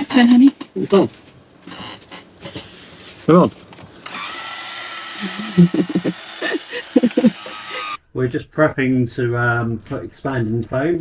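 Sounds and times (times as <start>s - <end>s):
roof vent fan whirring: 3.6s - 8.0s
bursts of laughter: 5.2s - 8.0s.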